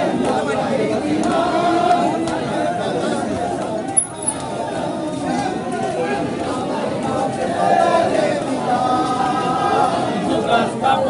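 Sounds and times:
chanted voices: 0.0 - 11.0
crowd chatter: 0.0 - 11.0.

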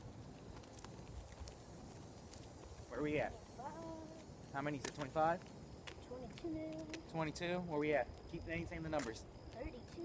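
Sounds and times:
footsteps on asphalt: 0.0 - 10.0.

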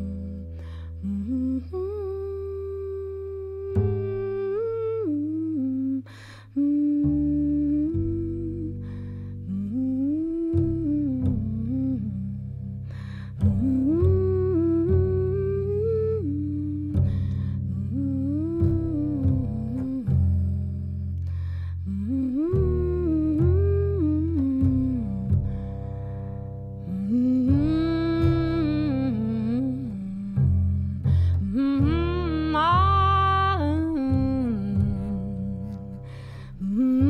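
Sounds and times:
woman humming melody: 0.0 - 25.7, 26.8 - 37.0
double bass plucked: 0.0 - 37.0.

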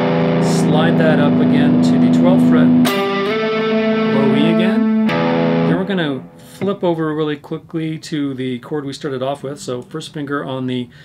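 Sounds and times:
electric guitar octave ringing: 0.0 - 6.7.

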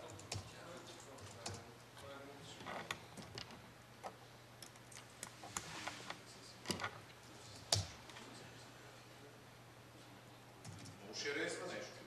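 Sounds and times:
typing on laptop keyboard: 0.0 - 1.7, 10.6 - 11.0.

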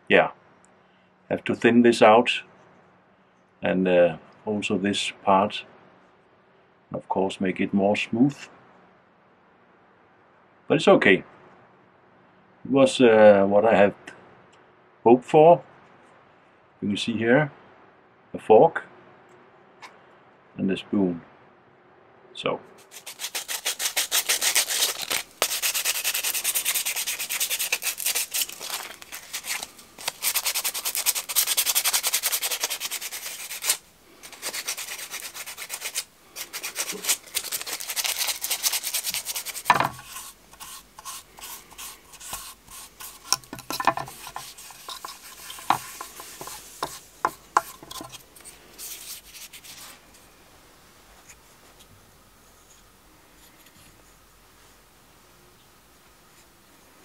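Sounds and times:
sanding strokes on wooden spoon: 22.8 - 48.2.

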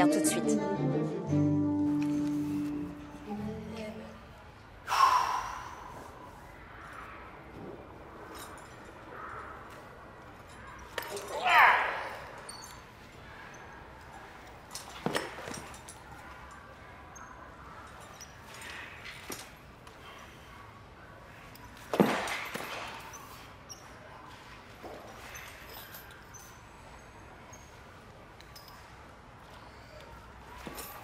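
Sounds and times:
people breathing and grunting: 2.0 - 31.0.

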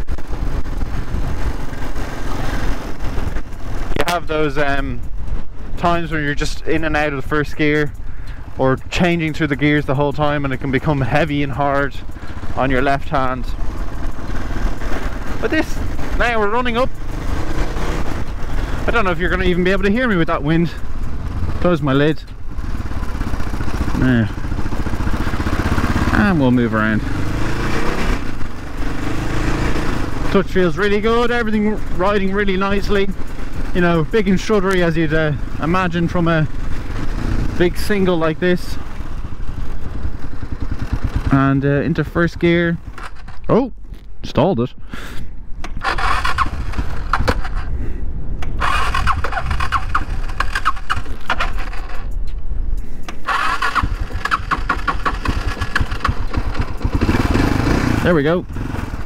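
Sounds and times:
motorcycle engine running: 0.0 - 44.1, 45.0 - 59.0
motorcycle starter cranking engine: 42.8 - 43.5, 45.6 - 47.8, 48.4 - 59.0
wind noise on microphone: 43.8 - 57.9.

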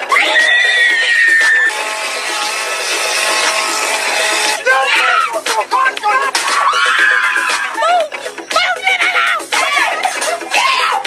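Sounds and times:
steady music: 0.0 - 11.0
person screaming: 6.4 - 7.9.

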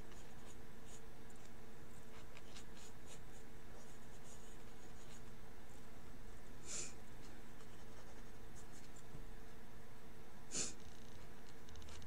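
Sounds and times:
pencil scratching on paper: 0.0 - 5.3, 7.2 - 9.1
steady low hum: 0.0 - 12.0.

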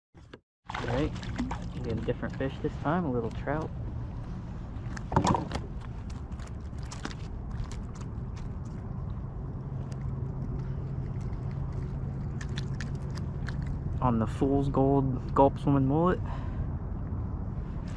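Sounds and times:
low steady hum: 0.2 - 17.9
steady low rumble: 0.7 - 17.9.

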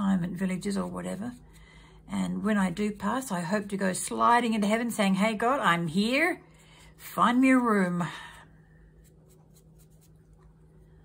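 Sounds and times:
brush scratching on paper: 0.4 - 1.6, 8.9 - 10.6.

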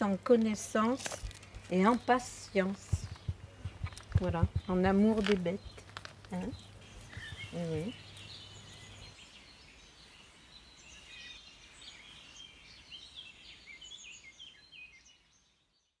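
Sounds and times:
birds chirping and trilling: 1.5 - 16.0.

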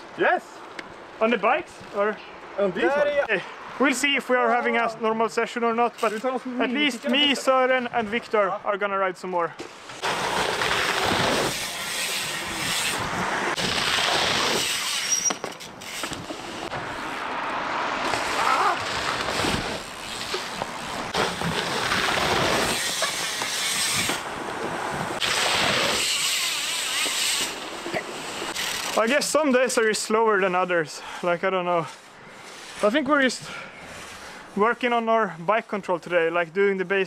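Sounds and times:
wind rushing over microphone: 10.0 - 14.7, 16.1 - 26.0.

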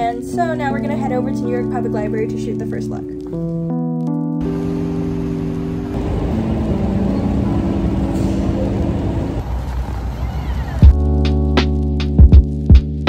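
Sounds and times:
soft background music: 0.0 - 9.1
city street traffic rumble: 4.4 - 12.5.

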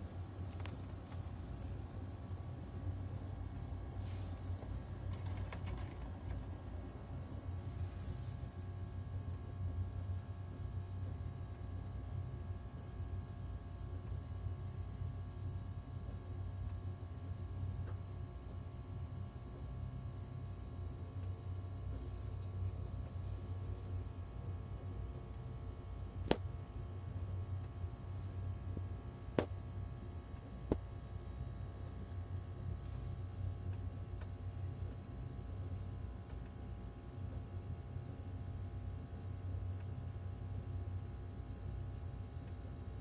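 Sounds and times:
low steady hum: 0.0 - 43.0
low steady rumble: 0.0 - 43.0.

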